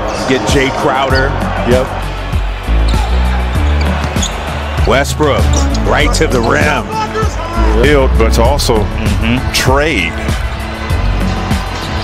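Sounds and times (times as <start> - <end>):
music with heavy bass line: 7.4 - 12.0.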